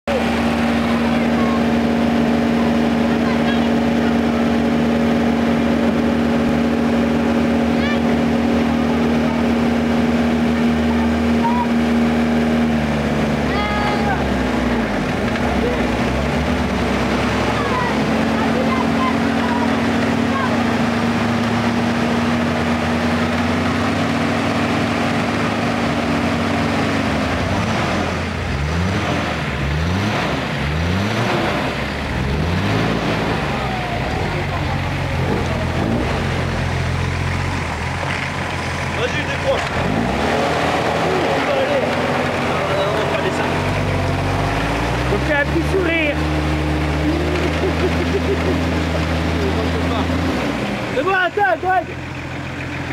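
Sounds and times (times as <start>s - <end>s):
off-road vehicle engine revving: 0.0s - 52.9s.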